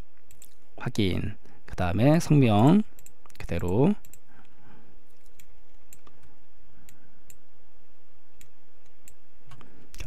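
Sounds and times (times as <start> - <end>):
faint steady hum: 0.0 - 10.0
computer mouse clicking: 5.2 - 7.4.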